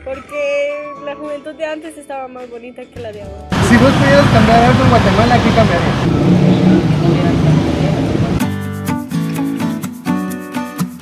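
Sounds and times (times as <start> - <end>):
street traffic: 3.4 - 8.4
young man speaking: 3.5 - 6.1.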